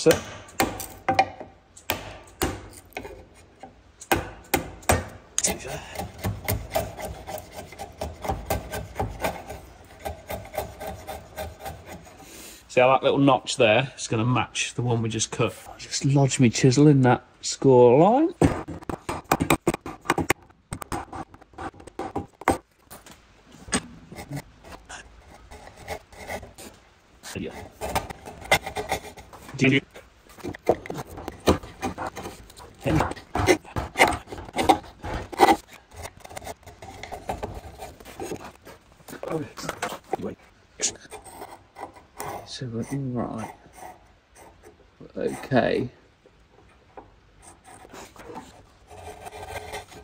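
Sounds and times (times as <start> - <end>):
chisel scraping wood: 1.9 - 12.5, 23.7 - 45.8, 47.4 - 50.0.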